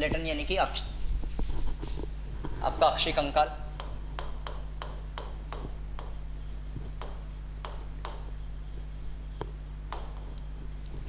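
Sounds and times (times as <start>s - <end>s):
low electrical hum: 0.0s - 11.0s
pen writing on a screen: 2.7s - 11.0s
pen tapping on a screen: 3.8s - 6.2s, 6.9s - 8.4s, 9.3s - 11.0s.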